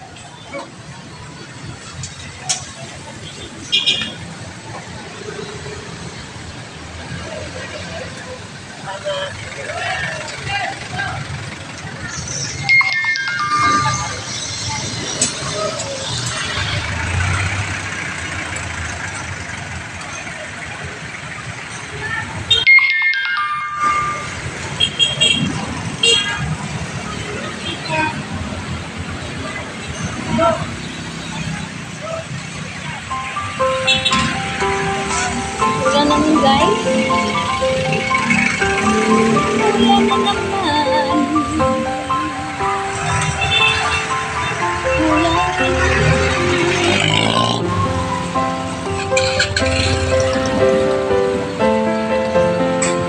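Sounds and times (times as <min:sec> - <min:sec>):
wet street traffic: 0:00.0 - 0:53.0
voices: 0:25.4 - 0:47.8
music: 0:33.1 - 0:47.0, 0:47.6 - 0:53.0.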